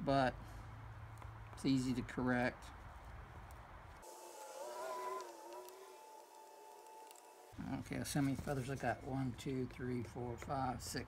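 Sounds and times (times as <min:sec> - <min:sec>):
distant engine drone: 0:03.4 - 0:07.9.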